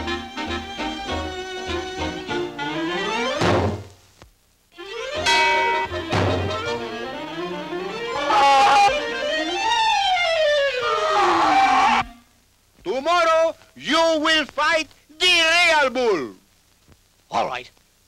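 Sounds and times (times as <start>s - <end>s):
orchestral comic cartoon music: 0.0s - 3.8s, 4.8s - 11.1s
sudden thumps: 3.3s - 4.0s, 5.7s - 6.9s.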